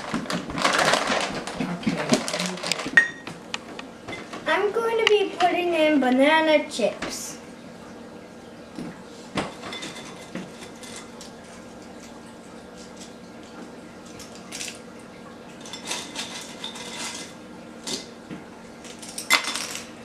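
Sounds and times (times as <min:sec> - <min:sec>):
dried chips clattering into glass jar: 0:18.9 - 0:19.9.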